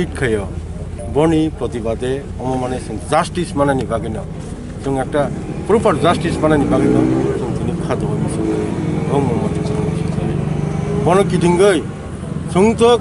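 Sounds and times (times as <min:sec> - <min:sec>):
steady low hum: 0:00.0 - 0:08.3
man speaking: 0:00.0 - 0:10.4, 0:11.0 - 0:11.9.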